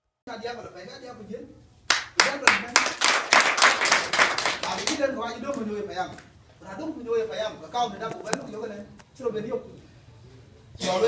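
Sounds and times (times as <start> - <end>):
group of people clapping: 1.9 - 5.1.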